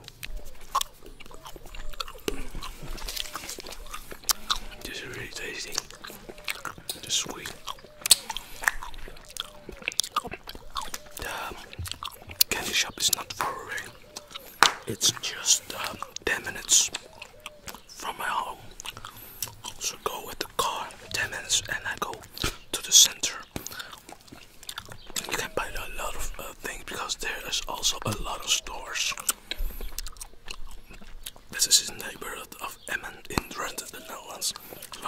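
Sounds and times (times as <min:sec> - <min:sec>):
wet gum chewing clicks: 0:00.0 - 0:35.0
soft whispering: 0:01.3 - 0:09.8, 0:10.9 - 0:24.0, 0:25.1 - 0:30.0, 0:31.5 - 0:35.0.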